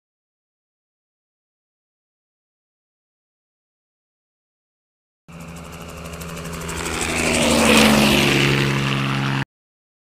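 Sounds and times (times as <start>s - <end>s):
propeller aircraft flying past: 5.3s - 9.5s.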